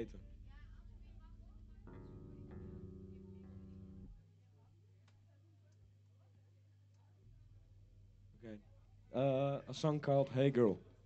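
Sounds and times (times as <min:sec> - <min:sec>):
steady low hum: 0:00.0 - 0:04.2
electric guitar chords ringing: 0:01.9 - 0:04.2.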